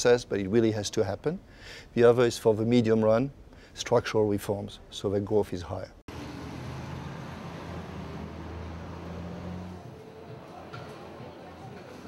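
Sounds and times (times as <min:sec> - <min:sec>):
city street traffic: 0:06.1 - 0:12.0.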